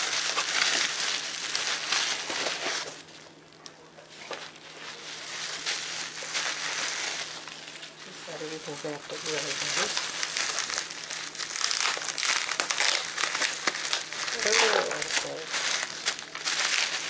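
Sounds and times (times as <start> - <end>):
bubble wrap crinkling: 0.0 - 17.0.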